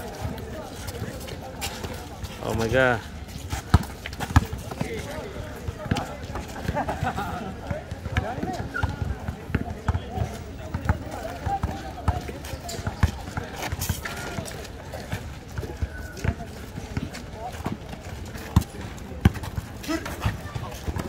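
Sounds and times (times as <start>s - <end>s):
basketball bouncing on asphalt: 3.5s - 21.0s.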